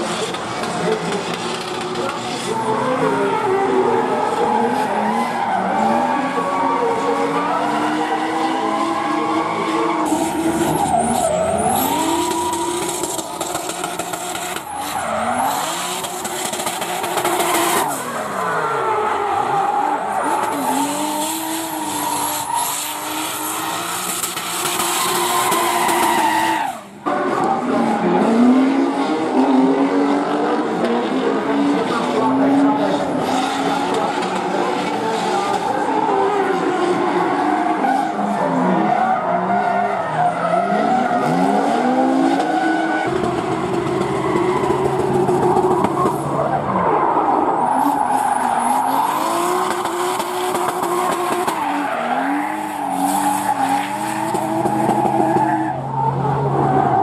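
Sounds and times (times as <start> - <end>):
car engine revving hard: 27.3 - 46.4.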